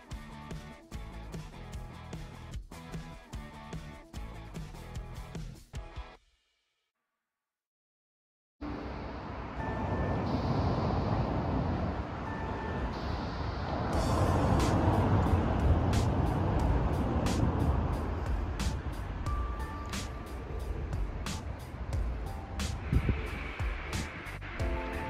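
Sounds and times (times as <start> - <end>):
background music with ticking beat: 0.0 - 6.4, 14.0 - 25.0
faint held notes: 8.6 - 25.0
low rumble of city traffic: 8.6 - 25.0.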